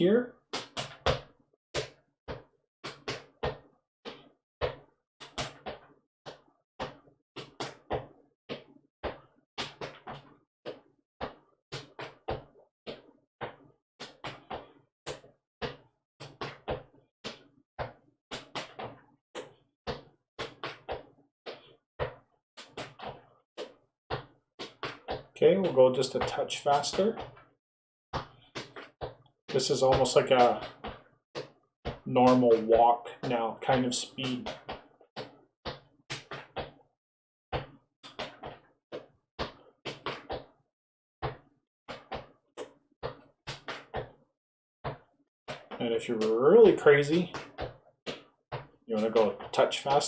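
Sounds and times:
clogging shoes on concrete: 28.2 - 36.9, 44.9 - 50.0.

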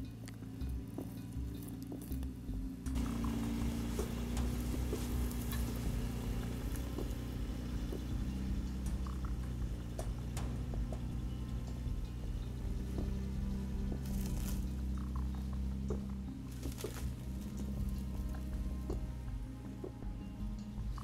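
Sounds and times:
scattered clicks: 0.0 - 21.0
truck engine running: 0.0 - 21.0.

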